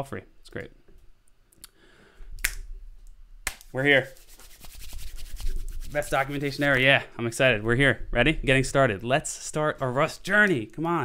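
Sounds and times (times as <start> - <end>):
hand scratching stubbled chin: 3.8 - 6.8.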